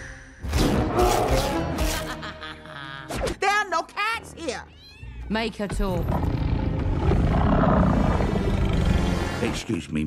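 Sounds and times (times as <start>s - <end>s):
cat meowing: 4.7s - 5.3s.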